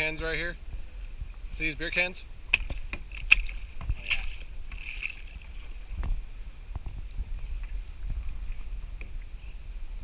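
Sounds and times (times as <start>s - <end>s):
paddle splashing in water: 2.5s - 6.0s.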